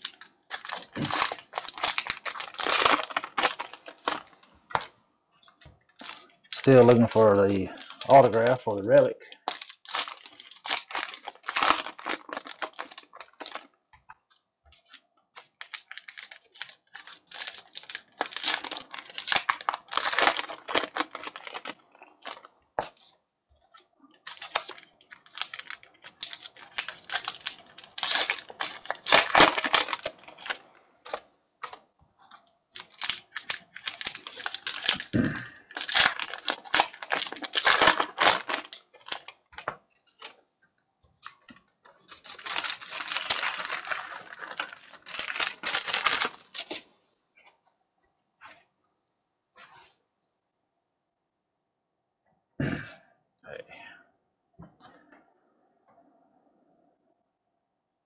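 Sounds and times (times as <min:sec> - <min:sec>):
foil wrapper rustling: 0:00.0 - 0:40.4, 0:41.1 - 0:47.5.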